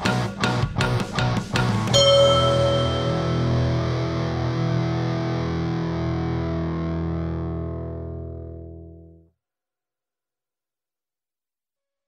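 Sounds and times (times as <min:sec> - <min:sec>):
distorted electric guitar chord: 0:01.9 - 0:09.1.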